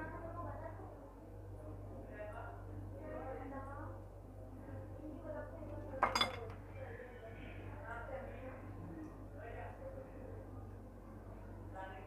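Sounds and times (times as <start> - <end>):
metal spoon clinking glass bowl: 6.0 - 6.4.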